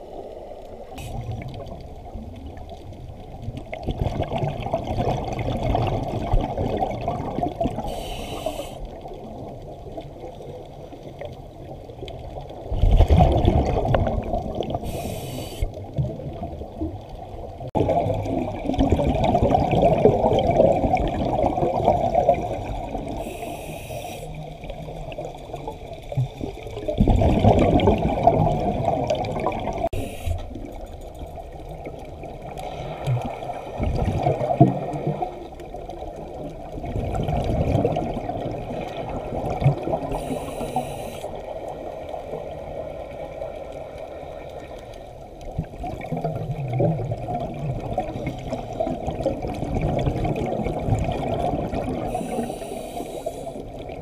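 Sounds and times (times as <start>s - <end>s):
exhaled bubbles underwater: 0.0s - 54.0s
regulator inhale hiss: 0.7s - 1.4s, 7.8s - 9.0s, 14.8s - 15.8s, 23.1s - 24.5s, 29.9s - 30.6s, 40.1s - 41.5s, 52.1s - 53.8s.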